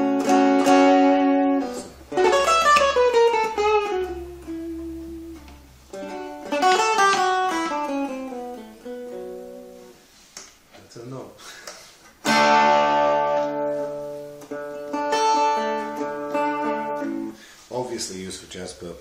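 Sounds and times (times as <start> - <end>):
electric jazz guitar: 0.0 - 10.7, 11.8 - 17.7.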